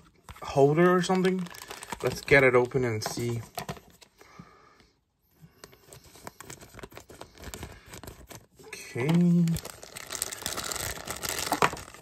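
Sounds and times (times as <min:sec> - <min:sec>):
plastic bag crinkling: 0:00.9 - 0:03.7, 0:06.4 - 0:12.0.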